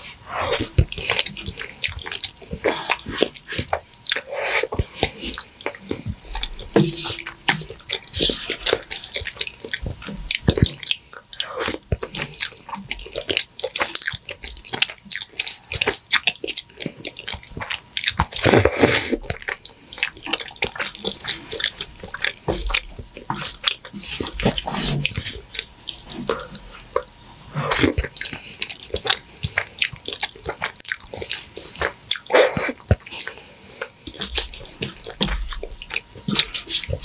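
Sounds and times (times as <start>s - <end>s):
wet chewing with clicks: 0.5s - 37.0s
slurping noodles: 18.3s - 19.2s.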